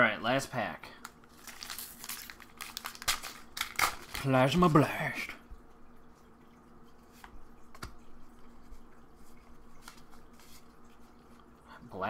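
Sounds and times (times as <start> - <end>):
cards rustling and ticking: 1.0 - 4.8, 7.1 - 11.4.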